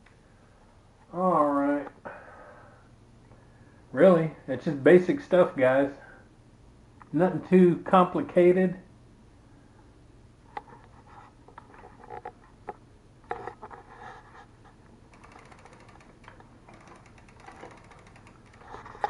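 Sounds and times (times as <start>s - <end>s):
bicycle clicks and knocks: 15.1s - 19.0s
faint rapid ticking: 15.1s - 19.0s.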